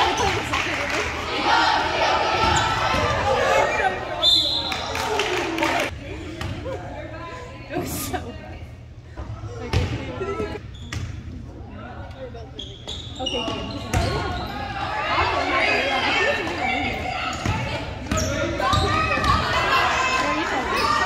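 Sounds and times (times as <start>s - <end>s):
overlapping voices in a gym: 0.0s - 10.6s, 13.2s - 21.0s.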